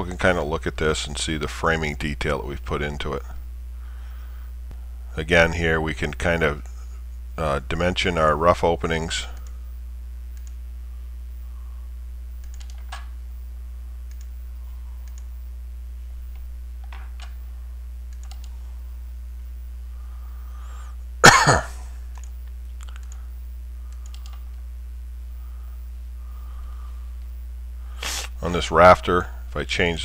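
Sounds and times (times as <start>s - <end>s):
low electrical hum: 0.0s - 30.0s
computer mouse clicks: 9.4s - 9.6s, 10.3s - 10.6s, 12.4s - 13.1s, 14.0s - 14.4s, 15.0s - 15.3s, 18.1s - 18.6s, 22.1s - 23.2s, 23.9s - 24.6s
person coughing: 21.2s - 22.0s.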